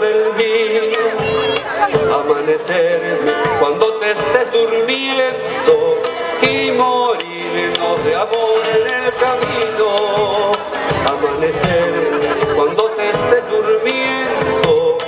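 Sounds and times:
acoustic guitar: 0:00.0 - 0:15.0.

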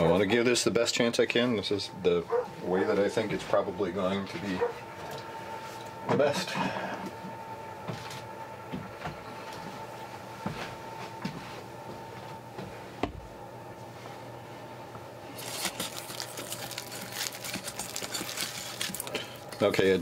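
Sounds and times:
faint steady hum: 0:00.0 - 0:20.0.

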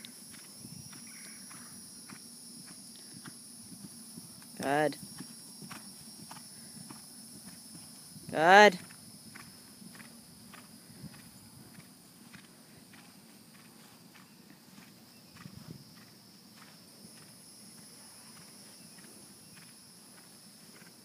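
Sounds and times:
horse hoofbeats on grass: 0:00.0 - 0:21.0.

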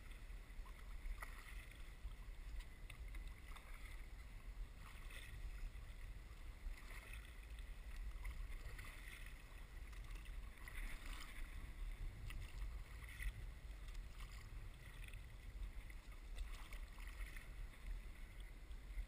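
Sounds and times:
paddle splashing in water: 0:00.0 - 0:19.0.

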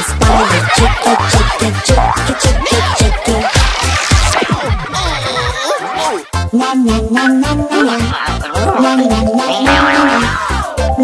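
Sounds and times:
upbeat children's backing music: 0:00.0 - 0:11.0
sliding cartoon sound effect: 0:08.7 - 0:10.4.

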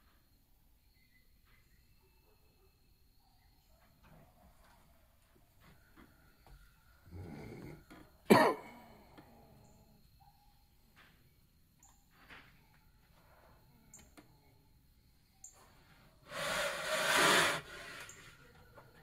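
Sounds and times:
rough breathy noise: 0:16.2 - 0:18.4.

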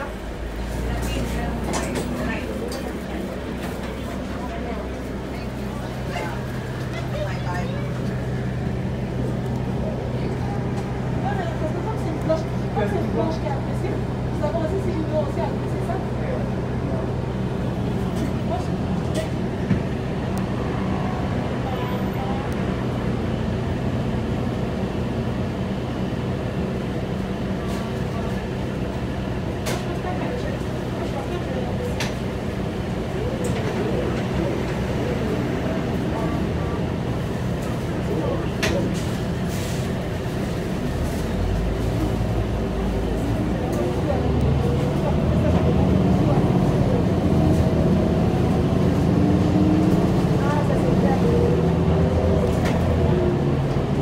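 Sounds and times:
bus engine hum: 0:00.0 - 0:54.0
road noise: 0:00.0 - 0:54.0.

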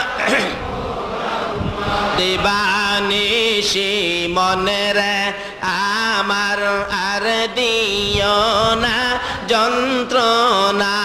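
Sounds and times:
man chanting melodically: 0:01.9 - 0:11.0.

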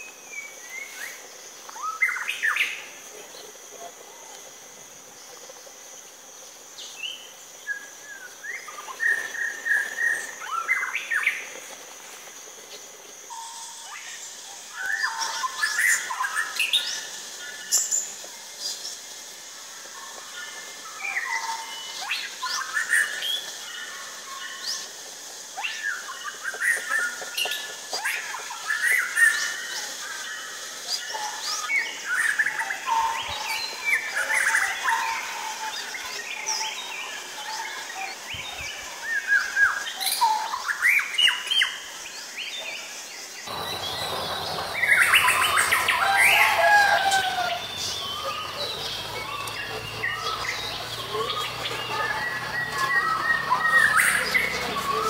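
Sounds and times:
bird singing whistles and chirps: 0:43.5 - 0:55.0.

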